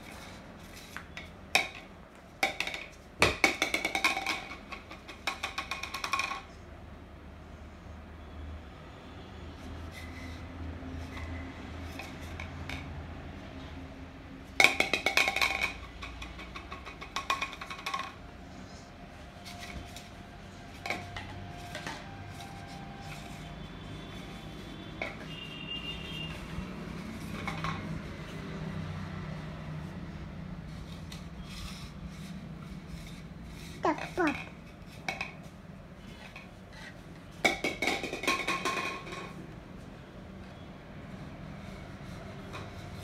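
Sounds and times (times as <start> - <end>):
plastic toy clattering: 1.6 - 6.6, 14.6 - 18.3.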